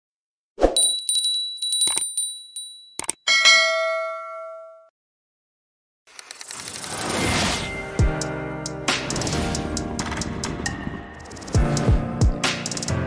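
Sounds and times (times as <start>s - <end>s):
metallic bell ding: 0.7s - 4.9s
thin high ringing tone: 0.7s - 4.9s
quick run of small clicks: 6.1s - 7.0s.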